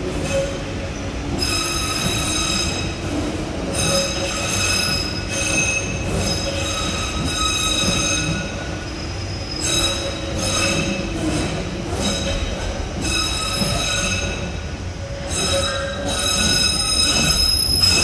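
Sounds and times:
low rumble of train cars: 0.0s - 18.0s
train wheels squealing: 0.1s - 18.0s.

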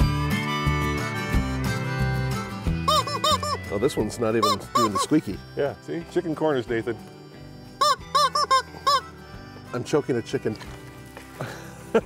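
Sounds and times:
rubber chicken toy squawking: 2.9s - 3.7s, 4.4s - 5.2s, 7.8s - 9.1s.

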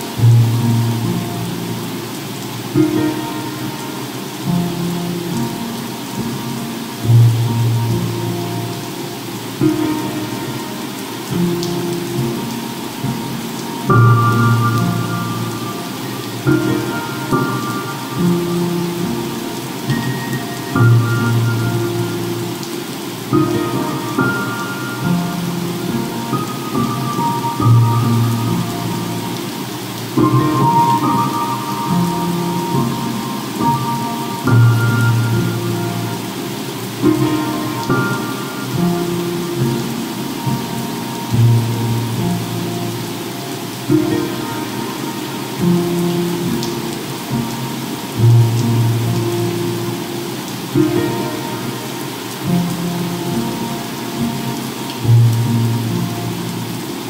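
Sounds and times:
ocean waves: 0.0s - 48.2s, 48.8s - 57.0s
slow soft piano music: 0.0s - 57.0s.

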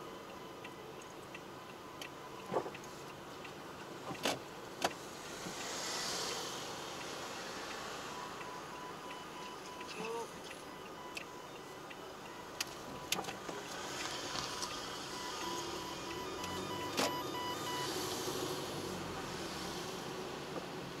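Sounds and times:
road and engine noise: 0.0s - 21.0s
faint broken beeping tone: 7.7s - 18.6s.

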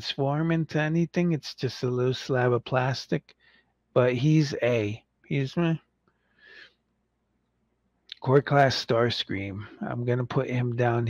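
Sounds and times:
faint intake of breath: 6.2s - 6.7s.

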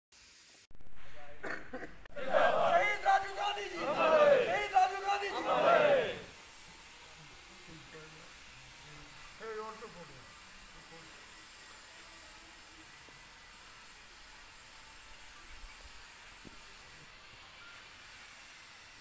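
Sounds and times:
men chanting a slogan: 2.1s - 6.3s.

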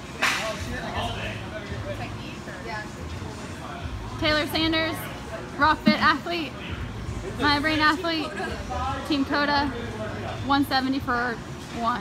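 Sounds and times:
faint echoing voices in gym: 0.0s - 12.0s.

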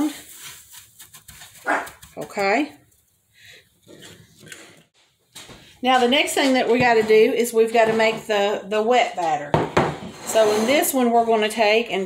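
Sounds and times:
crackly rustling of crumbs: 0.0s - 3.1s.

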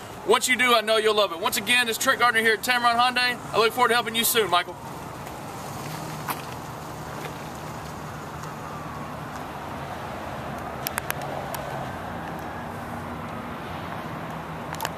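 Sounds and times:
road traffic hum: 0.0s - 14.9s
vehicle whine passing: 2.5s - 14.9s.

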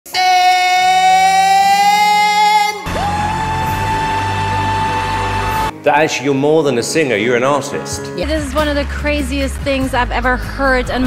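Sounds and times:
man singing a high note: 0.1s - 3.5s
man singing a long note: 0.1s - 5.1s
band playing: 2.8s - 6.0s.

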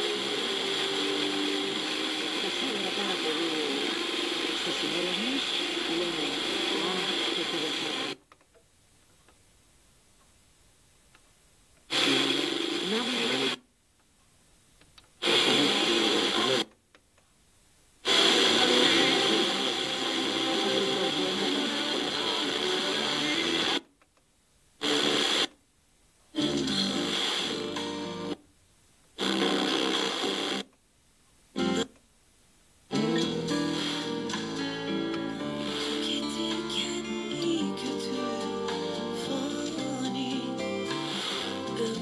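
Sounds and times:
radio broadcast music bursts: 0.0s - 8.2s, 11.9s - 13.6s, 15.2s - 16.8s, 18.0s - 23.9s, 24.8s - 25.6s, 26.3s - 28.4s, 29.2s - 30.7s, 32.9s - 42.0s.

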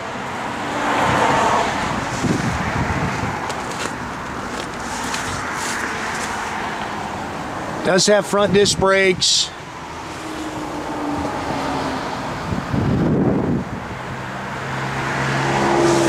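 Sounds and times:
road traffic passing: 0.0s - 16.0s.

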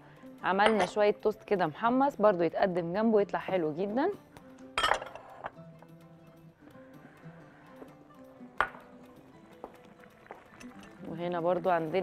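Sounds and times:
soft background music: 0.0s - 12.0s
dishes and utensils clinking: 0.6s - 1.0s, 4.8s - 5.6s, 8.6s - 8.9s, 10.2s - 11.0s.

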